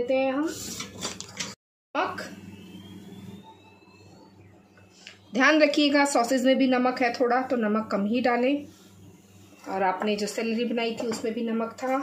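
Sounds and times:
thin tone rising in pitch: 2.2s - 4.8s.

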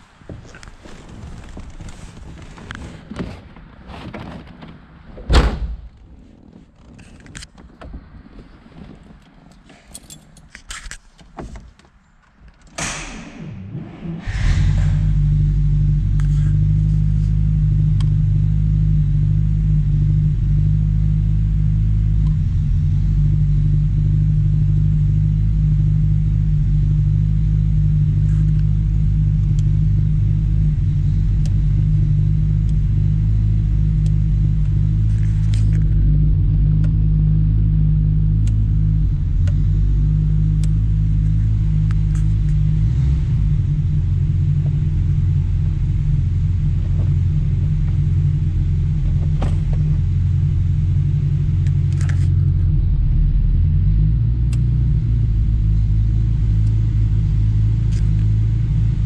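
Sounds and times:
car engine idling: 12.7s - 59.0s.

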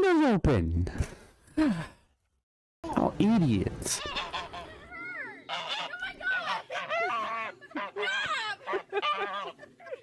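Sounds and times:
goose honking: 4.0s - 4.8s, 5.5s - 9.6s.

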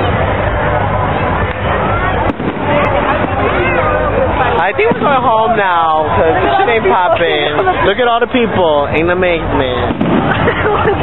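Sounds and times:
crowd chatter: 0.0s - 11.0s
fireworks popping and crackling: 2.2s - 6.0s, 9.6s - 11.0s.

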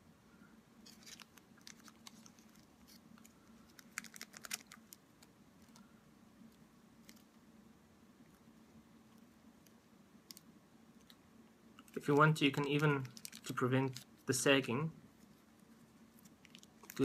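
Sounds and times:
faint steady hum: 0.0s - 17.0s
plastic sheet crinkling: 0.8s - 5.8s, 11.8s - 14.4s, 15.7s - 17.0s.

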